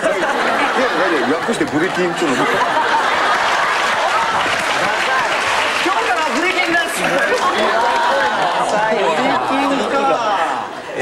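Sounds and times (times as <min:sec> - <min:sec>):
audience clapping and laughing: 0:00.0 - 0:10.6.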